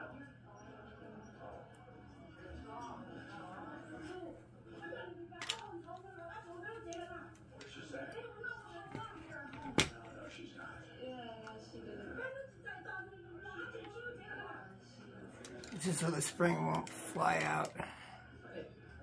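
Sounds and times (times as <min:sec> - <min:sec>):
television speech: 0:00.0 - 0:19.0.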